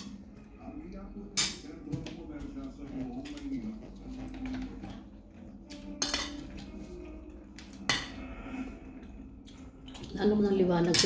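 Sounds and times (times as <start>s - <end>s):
cutlery clinking and scraping on plate: 5.7s - 6.8s, 7.7s - 8.2s.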